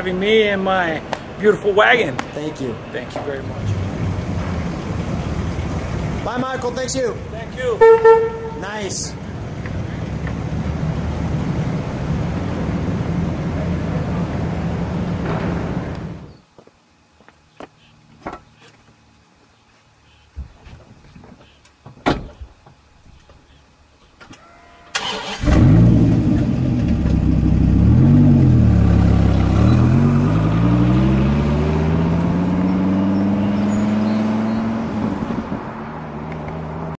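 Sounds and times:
car engine starting and revving: 0:03.5 - 0:06.8, 0:09.4 - 0:16.3, 0:25.0 - 0:37.0
car accelerating away: 0:25.0 - 0:37.0.

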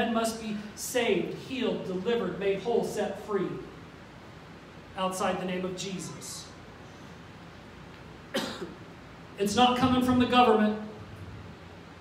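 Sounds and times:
person coughing: 0:08.3 - 0:08.8.

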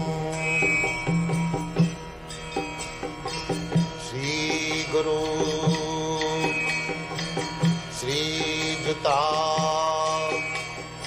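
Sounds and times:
person singing a prayer: 0:00.0 - 0:00.9, 0:04.0 - 0:07.0, 0:07.9 - 0:10.7.

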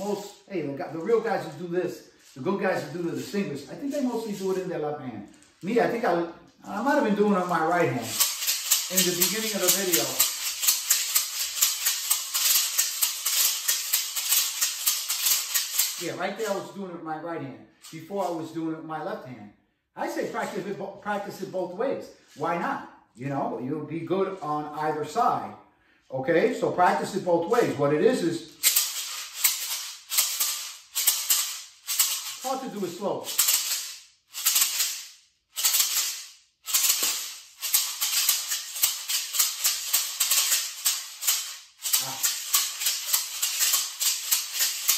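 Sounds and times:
maracas shaken in rhythm: 0:00.0 - 0:04.8, 0:06.6 - 0:16.8, 0:28.2 - 0:44.9.

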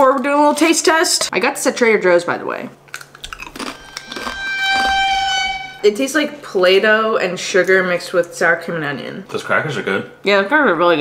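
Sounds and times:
high-pitched tone: 0:03.2 - 0:06.5.

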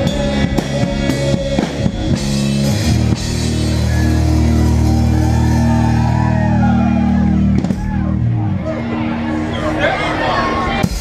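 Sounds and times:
rock band holding a chord: 0:00.0 - 0:11.0.

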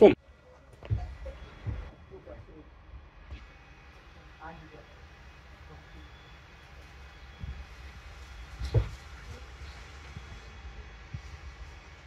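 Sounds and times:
bus engine rumbling: 0:00.0 - 0:12.0
knocks and thump: 0:00.8 - 0:02.0, 0:08.6 - 0:09.1.

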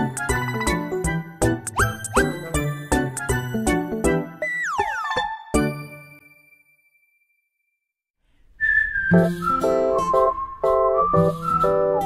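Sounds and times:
whistled sliding note: 0:08.6 - 0:12.0
light music track: 0:09.0 - 0:12.0.

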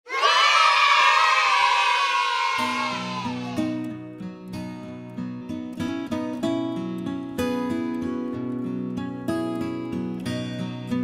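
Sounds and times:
children cheering: 0:00.1 - 0:03.9.

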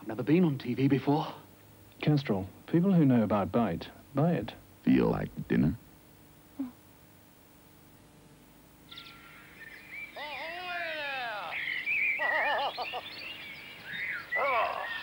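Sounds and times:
birds calling: 0:08.8 - 0:15.0.

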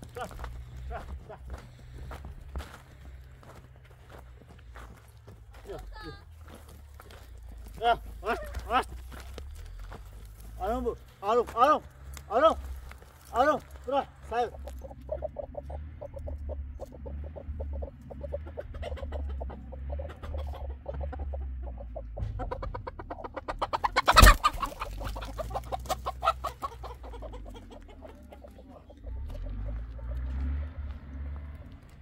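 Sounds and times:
hens clucking: 0:00.0 - 0:32.0.

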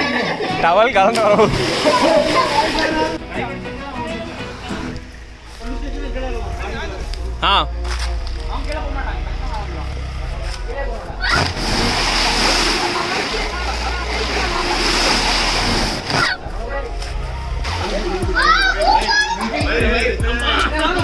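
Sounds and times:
churning water: 0:01.0 - 0:03.2, 0:11.3 - 0:16.4
person splashing into water: 0:01.1 - 0:03.0, 0:11.3 - 0:13.5, 0:14.1 - 0:16.4.

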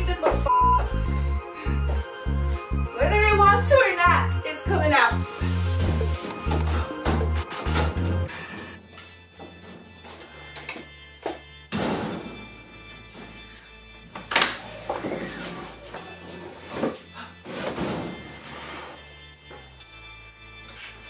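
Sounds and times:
music with heavy bass beat: 0:05.7 - 0:08.3.

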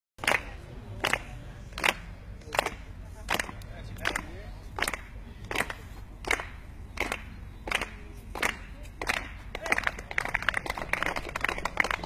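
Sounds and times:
quick hand clapping: 0:00.2 - 0:12.0.

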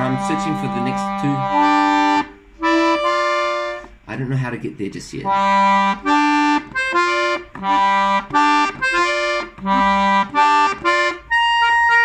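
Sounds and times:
accordion chords: 0:00.0 - 0:12.0.

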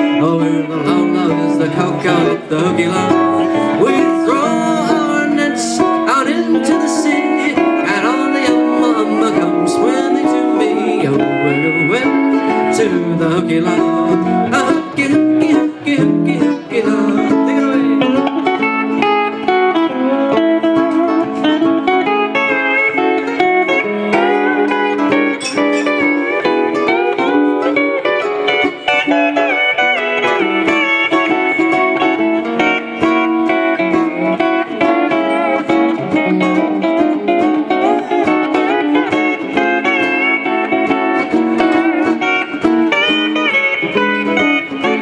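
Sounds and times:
pedal steel guitar melody: 0:00.0 - 0:45.0
ukulele strumming: 0:00.0 - 0:45.0.

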